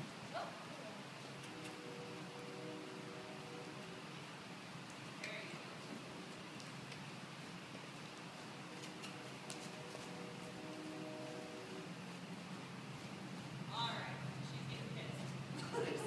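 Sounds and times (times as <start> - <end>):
low hum: 0.0 - 15.8
faint steady hiss: 0.0 - 16.0
light ticks: 6.5 - 7.1.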